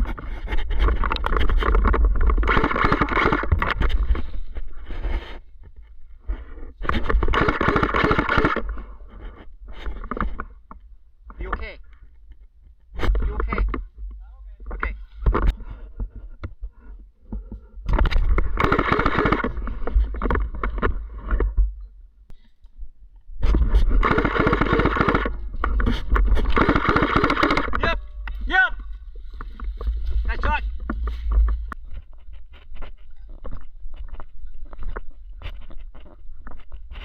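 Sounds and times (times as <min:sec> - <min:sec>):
rustling in undergrowth: 0:25.4 - 0:37.0
person speaking: 0:27.7 - 0:29.2, 0:29.9 - 0:31.8
shouted voice calls: 0:27.8 - 0:29.0
low rumble on microphone: 0:27.9 - 0:37.0.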